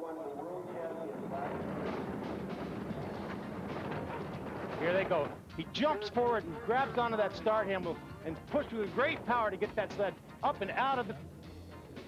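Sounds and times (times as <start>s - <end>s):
bobsled runners rumbling on ice: 0.6s - 7.9s.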